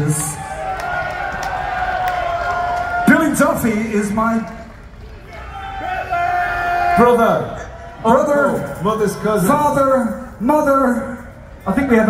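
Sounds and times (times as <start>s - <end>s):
crowd murmur: 0.0s - 10.4s.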